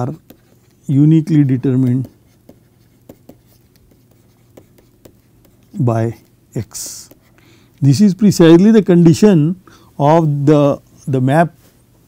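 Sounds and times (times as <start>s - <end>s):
man speaking: 0.0s - 2.2s, 5.7s - 7.2s, 7.8s - 11.6s
stylus tapping and scratching: 0.0s - 7.8s.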